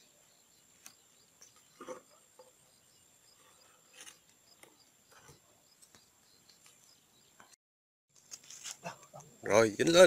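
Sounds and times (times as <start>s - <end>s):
crickets chirping: 0.0s - 7.5s.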